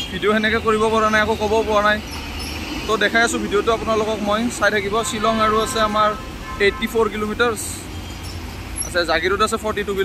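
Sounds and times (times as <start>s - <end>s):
traffic rumble: 0.0s - 10.0s
man speaking: 2.9s - 7.9s.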